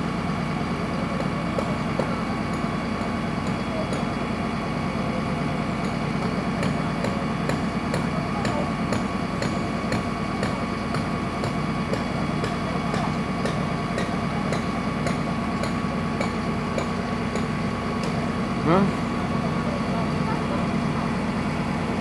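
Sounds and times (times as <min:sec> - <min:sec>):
fire engine idling: 0:00.0 - 0:22.0.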